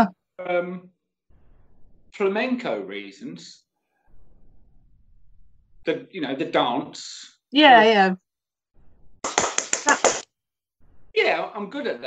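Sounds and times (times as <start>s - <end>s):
rapid hand clapping: 9.2s - 10.3s.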